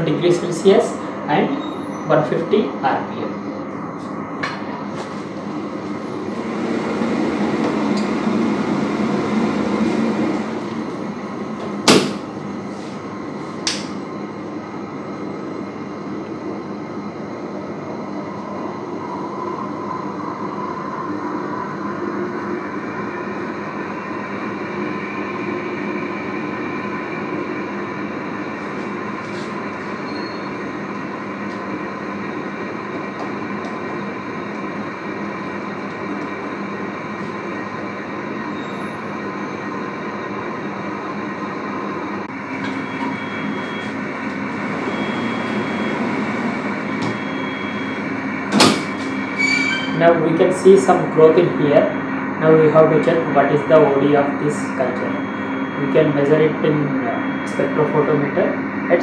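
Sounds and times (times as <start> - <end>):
higher mechanical whine: 0.0 - 59.0
incubator mechanical rumble: 0.0 - 59.0
door shutting with a bang: 11.8 - 12.2, 48.5 - 49.1.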